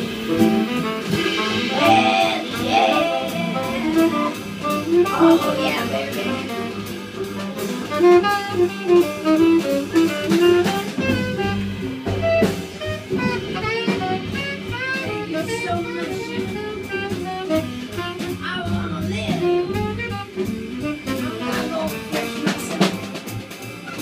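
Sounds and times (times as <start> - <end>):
tenor saxophone run: 0.0 - 18.4
double bass: 0.0 - 24.0
drums: 0.0 - 24.0.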